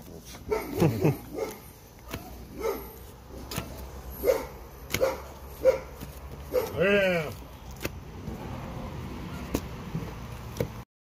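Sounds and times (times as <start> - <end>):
dog barking: 0.5 - 3.0, 4.2 - 6.8.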